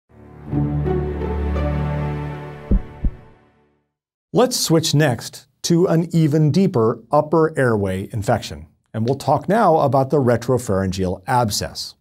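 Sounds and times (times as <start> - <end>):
deep bass thumps: 2.7 - 3.3.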